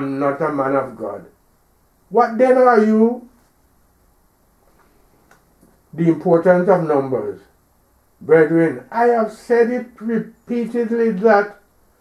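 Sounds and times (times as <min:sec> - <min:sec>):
person speaking: 0:00.0 - 0:01.3, 0:02.1 - 0:03.4, 0:05.9 - 0:07.6, 0:08.2 - 0:11.6
background hiss: 0:00.0 - 0:12.0.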